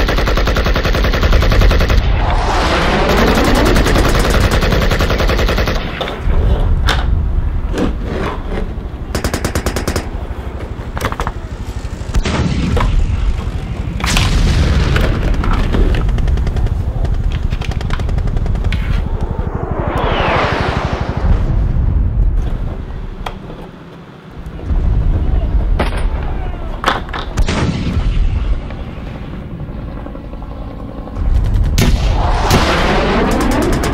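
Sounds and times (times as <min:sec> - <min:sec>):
low rumble of explosions: 0:01.3 - 0:33.9
whooshing sweeps: 0:02.0 - 0:05.1, 0:18.6 - 0:23.2, 0:31.2 - 0:33.9
gunshots: 0:31.2 - 0:33.9.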